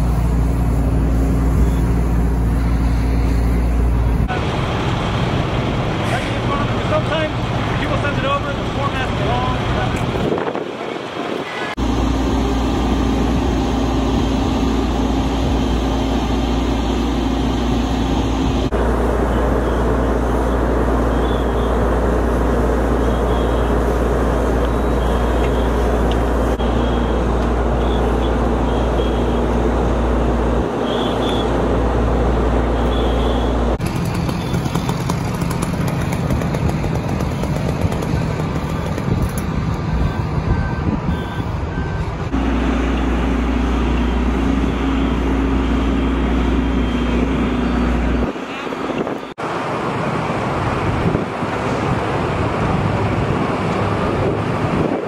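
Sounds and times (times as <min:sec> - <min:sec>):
diesel engine droning: 0:00.0 - 0:55.0
wind rumbling on microphone: 0:09.3 - 0:19.2, 0:35.2 - 0:42.4, 0:50.2 - 0:55.0.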